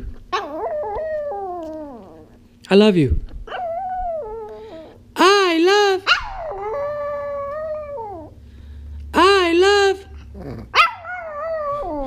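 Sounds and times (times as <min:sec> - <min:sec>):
dog howling whine: 0:00.3 - 0:02.4, 0:03.5 - 0:05.0, 0:06.3 - 0:08.4, 0:10.8 - 0:12.0.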